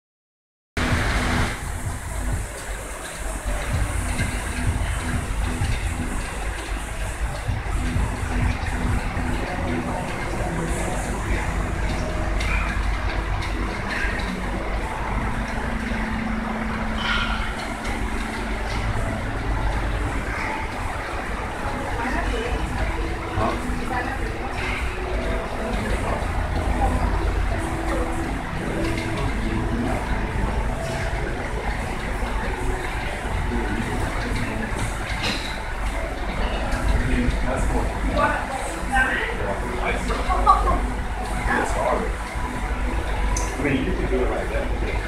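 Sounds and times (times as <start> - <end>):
low rumble: 0.8 - 2.6, 3.5 - 45.0
faint indistinct voices: 1.7 - 45.0.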